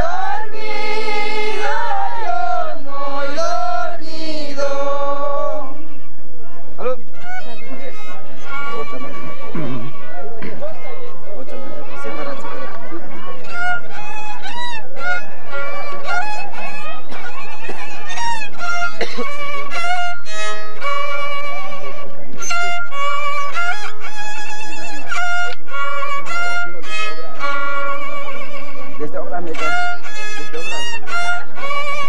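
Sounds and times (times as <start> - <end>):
group singing folk song: 0.0 - 5.8
violin: 0.0 - 32.0.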